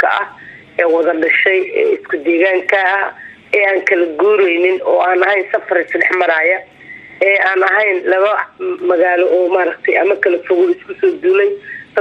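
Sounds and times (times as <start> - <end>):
woman talking: 0.0 - 12.0.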